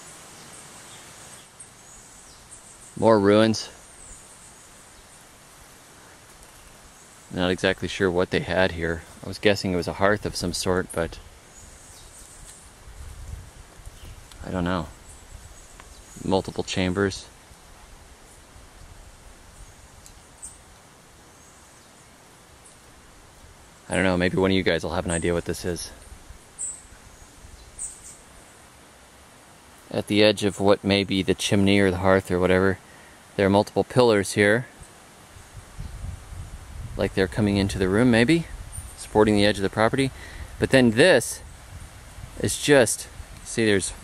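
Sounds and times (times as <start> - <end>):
faint even hiss: 0.0 - 44.0
faint rainforest ambience: 0.0 - 44.0.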